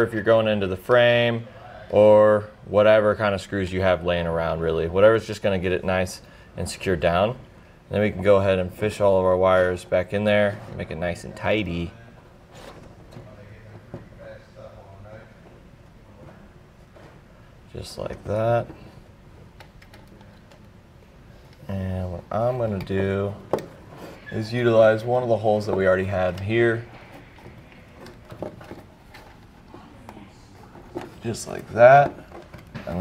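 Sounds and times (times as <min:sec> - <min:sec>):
wires handling noise: 0:17.9 - 0:21.7, 0:22.3 - 0:33.0.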